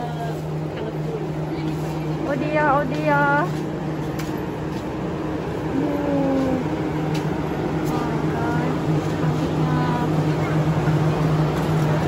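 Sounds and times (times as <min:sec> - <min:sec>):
faint voices talking: 0:00.0 - 0:12.0
low mechanical hum: 0:00.0 - 0:12.0.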